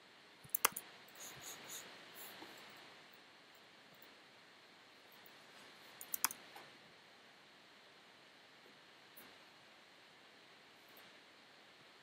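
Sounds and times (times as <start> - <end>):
computer mouse clicking: 0.5 - 1.9, 6.0 - 6.4.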